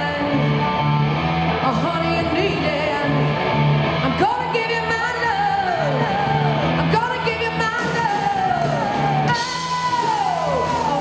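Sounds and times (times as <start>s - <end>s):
live rock band playing: 0.0s - 11.0s
female singer belting: 1.6s - 11.0s.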